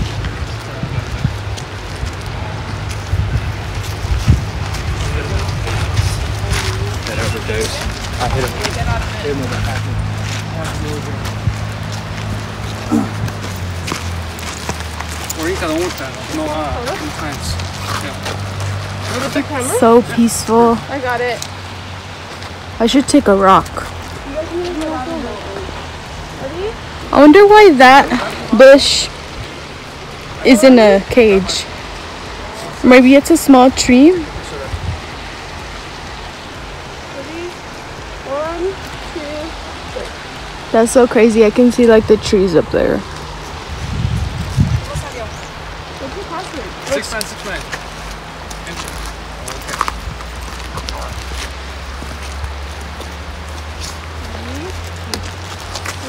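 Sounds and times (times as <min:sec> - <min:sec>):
river rushing over rocks: 0:00.0 - 0:56.0
people talking: 0:04.9 - 0:11.2, 0:15.3 - 0:18.4, 0:19.1 - 0:21.4, 0:22.8 - 0:29.2, 0:30.4 - 0:31.7, 0:32.5 - 0:34.8, 0:38.2 - 0:43.0, 0:44.8 - 0:47.8, 0:54.3 - 0:55.3
faint voices: 0:12.6 - 0:13.7.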